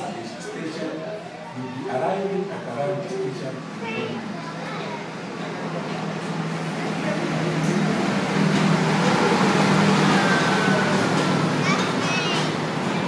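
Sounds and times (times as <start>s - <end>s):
train rolling: 5.0s - 13.0s.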